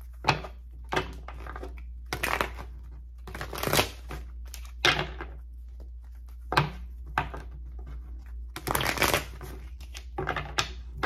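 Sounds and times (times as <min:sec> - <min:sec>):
cards sliding and flicking: 0:08.6 - 0:10.2.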